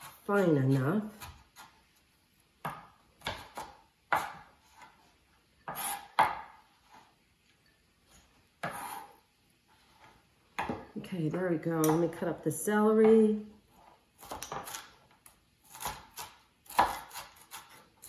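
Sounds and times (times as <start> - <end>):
knife chopping on cutting board: 0.0 - 1.8, 2.6 - 5.0, 5.6 - 7.0, 8.6 - 9.2, 14.2 - 14.9, 15.6 - 17.9.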